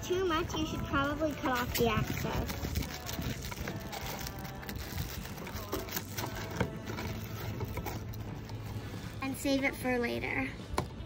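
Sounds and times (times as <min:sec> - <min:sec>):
plastic film rustling: 0:01.2 - 0:08.9.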